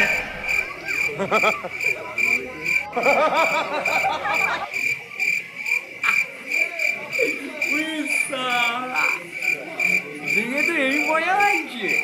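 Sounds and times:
voice in wavy swoops: 0.0s - 0.9s.

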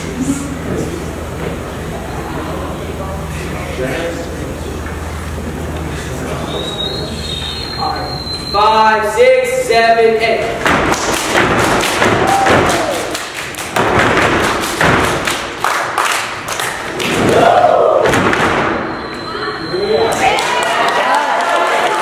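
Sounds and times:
stomps and hand strikes: 10.6s - 13.0s, 13.7s - 15.4s, 18.0s - 18.8s.

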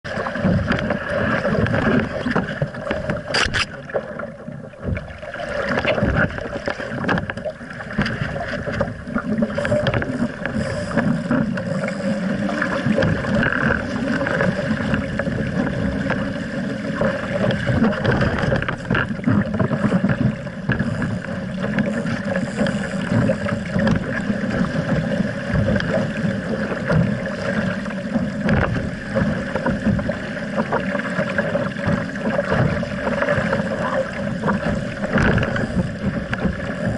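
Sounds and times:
water rushing along a hull: 0.0s - 36.9s.

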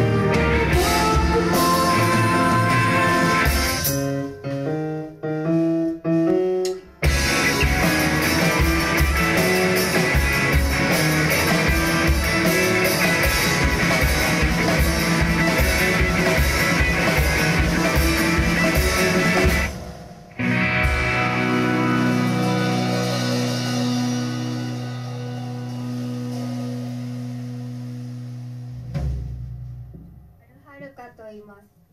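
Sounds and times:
live rock band playing: 0.0s - 29.8s.

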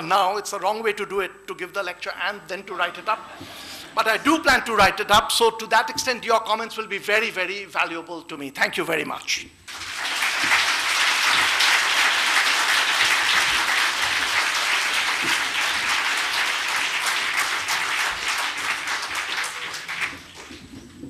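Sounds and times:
audience applauding: 9.7s - 20.9s.

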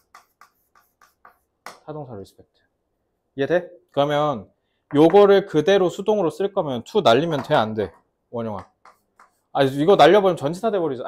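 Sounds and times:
chalk tapping and scratching: 0.0s - 1.9s, 7.3s - 10.2s.

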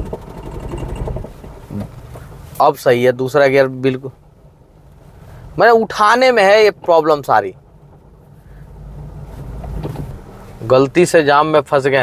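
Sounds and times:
car juddering pulling away: 0.0s - 12.0s.

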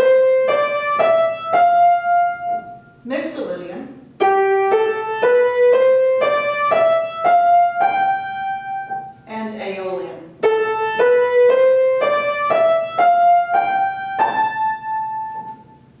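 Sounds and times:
piano playing scales: 0.0s - 3.4s, 4.0s - 16.0s
person speaking: 3.0s - 4.0s, 9.2s - 10.4s.

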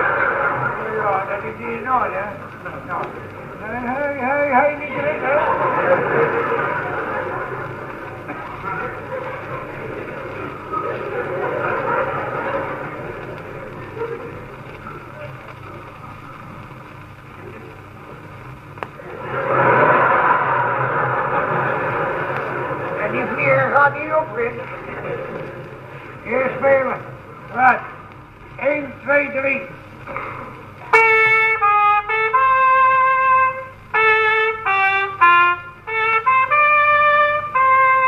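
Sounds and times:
audience laughing: 0.0s - 16.7s, 18.6s - 28.0s.

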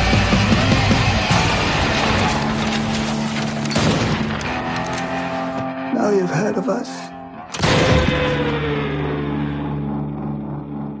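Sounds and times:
low droning tone: 3.8s - 11.0s.

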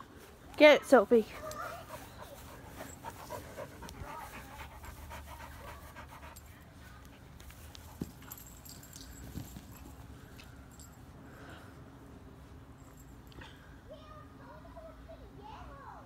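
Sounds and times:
dog panting quickly: 1.4s - 8.0s.

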